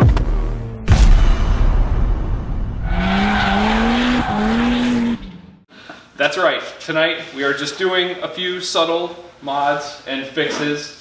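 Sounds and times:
car engine revving: 2.8 - 5.7.

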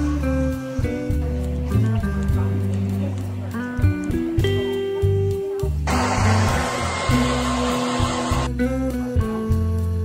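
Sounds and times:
guitar music: 5.9 - 8.5
hair dryer blowing: 5.9 - 8.5.

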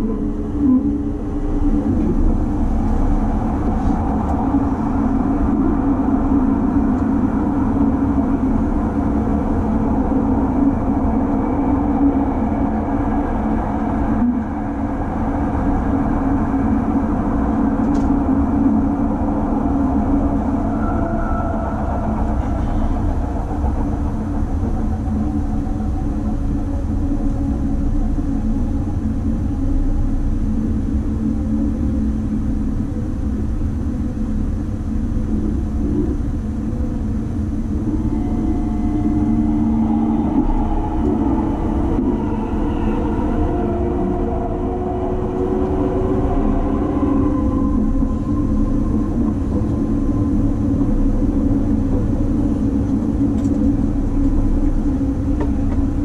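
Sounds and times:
train wheels rumbling on rails: 0.0 - 32.7, 34.9 - 56.0.

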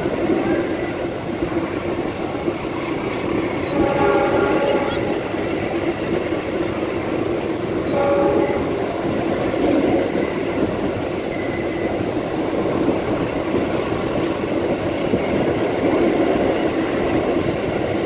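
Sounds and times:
train running rumble: 0.0 - 18.0
train horn blasts: 3.7 - 5.2, 7.8 - 8.9.

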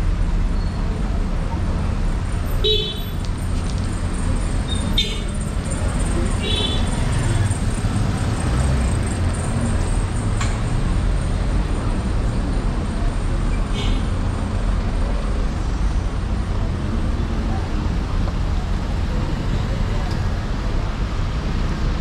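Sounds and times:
traffic passing: 0.0 - 22.0.

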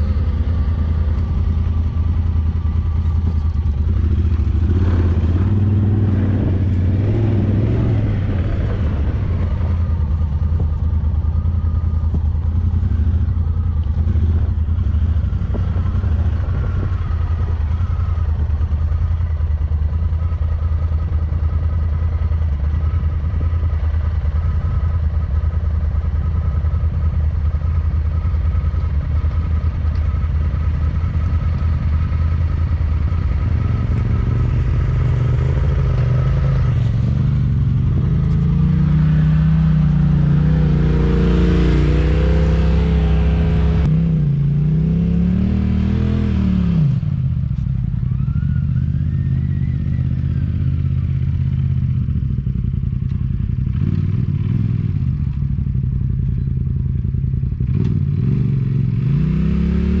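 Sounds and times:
vehicle engine revving: 2.6 - 11.1, 29.1 - 47.6, 57.6 - 60.0.

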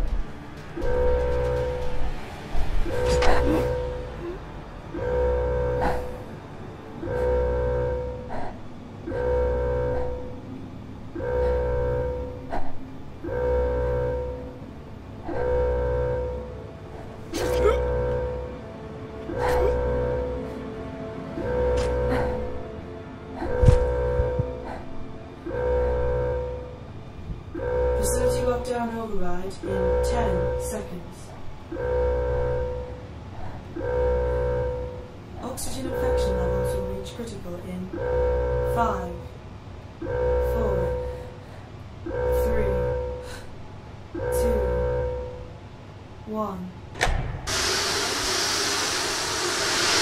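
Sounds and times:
low rumble: 0.0 - 8.9
alarm horn blasts: 0.0 - 46.1
pressurised gas venting hiss: 47.5 - 50.0.

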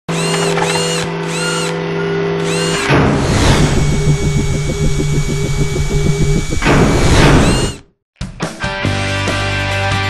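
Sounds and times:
synthesized mechanical whirring: 2.4 - 7.9
steady low hum: 2.5 - 7.8.

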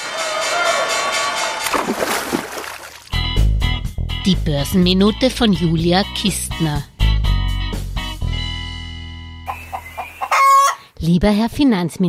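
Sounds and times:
chicken clucking: 9.5 - 10.8
loud squawk: 9.5 - 10.9.

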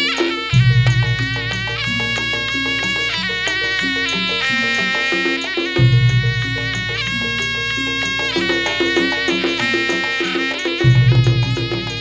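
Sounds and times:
barrel hand drums: 0.0 - 12.0
reed shawm melody: 0.0 - 12.0.

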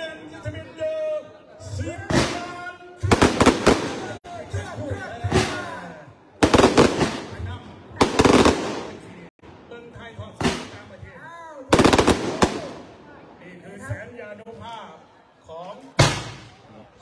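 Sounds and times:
rapid firework crackling: 3.1 - 4.2, 6.4 - 7.4, 8.0 - 9.2, 11.7 - 13.0.

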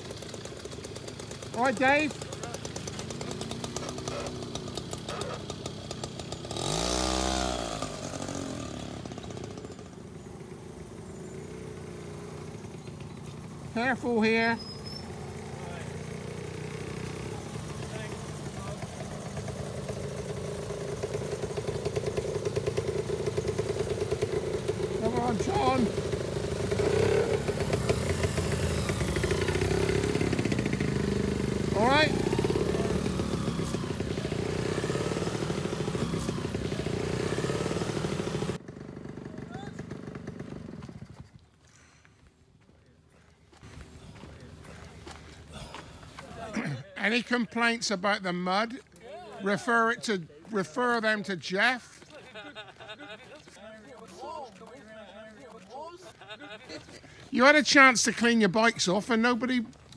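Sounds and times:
motorcycle engines passing: 0.0 - 59.9
outdoor ambience: 0.0 - 59.9.

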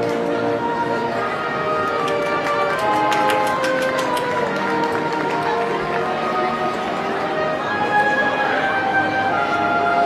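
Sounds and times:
marching band playing: 0.0 - 9.7.

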